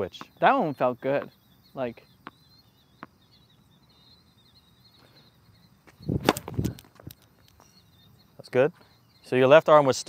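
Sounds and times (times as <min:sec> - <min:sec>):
faint high chirping: 0:00.0 - 0:10.0
tennis ball bouncing on court: 0:01.1 - 0:01.3, 0:02.2 - 0:02.4, 0:03.0 - 0:03.2, 0:06.2 - 0:07.1.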